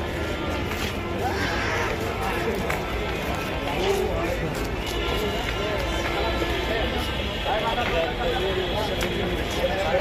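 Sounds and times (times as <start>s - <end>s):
footsteps on pavement: 0.0s - 10.0s
group of people chattering: 0.0s - 10.0s.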